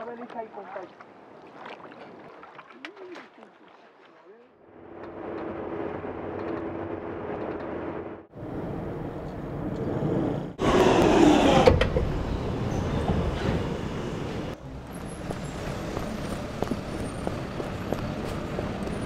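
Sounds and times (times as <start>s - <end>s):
steady vehicle noise: 4.6s - 19.0s
underground train running: 5.0s - 19.0s.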